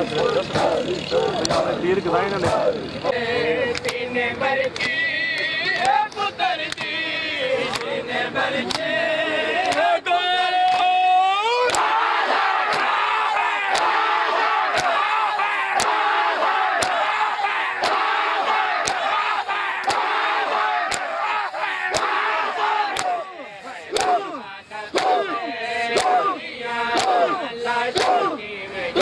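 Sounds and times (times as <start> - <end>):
men chanting and crying out: 0.0 - 29.0
hands slapping bare chests: 6.7 - 6.9, 11.7 - 12.0, 12.6 - 13.0, 13.7 - 14.0, 14.7 - 15.0, 16.8 - 17.1, 17.8 - 18.0, 18.8 - 19.2, 19.8 - 20.1, 20.8 - 21.2, 21.9 - 22.2, 22.8 - 23.2, 23.9 - 24.4, 25.0 - 25.3, 25.9 - 26.3, 26.9 - 27.4, 28.0 - 28.3.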